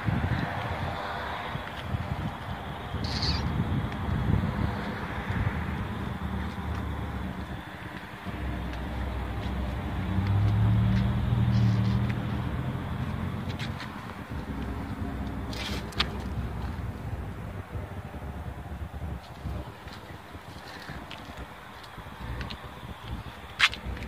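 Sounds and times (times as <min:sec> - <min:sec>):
vehicle engine running: 0:00.5 - 0:24.0
short high bird chirp: 0:03.0 - 0:03.4.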